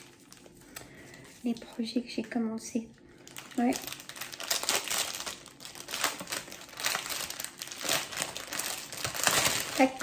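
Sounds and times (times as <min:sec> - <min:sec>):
plastic packaging crinkling: 0:00.0 - 0:02.3, 0:03.1 - 0:10.0.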